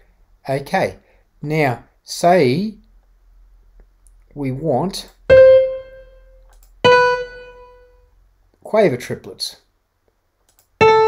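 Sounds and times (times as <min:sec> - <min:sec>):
single piano notes: 0:05.3 - 0:08.0, 0:10.8 - 0:11.0.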